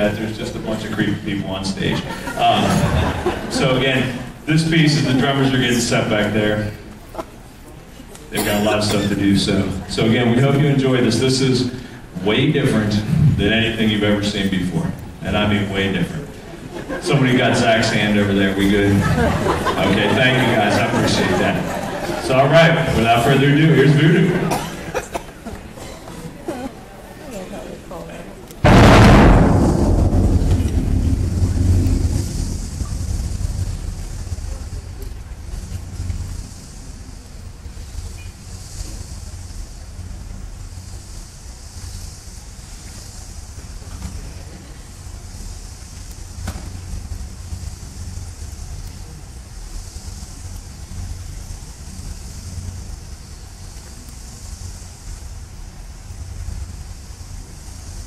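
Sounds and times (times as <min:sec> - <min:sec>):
low drum rumble: 0:00.0 - 0:06.8, 0:09.2 - 0:24.0, 0:28.6 - 0:58.0
airy hiss: 0:08.2 - 0:26.7, 0:28.6 - 0:58.0
percussion hit ringing: 0:28.7 - 0:32.1.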